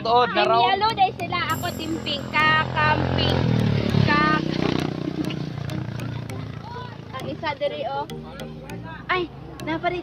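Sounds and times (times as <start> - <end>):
people talking: 0.0 - 4.6.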